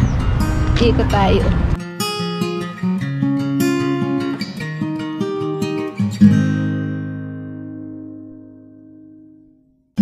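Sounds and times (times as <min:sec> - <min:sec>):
acoustic guitar plucking and strumming: 0:00.0 - 0:10.0.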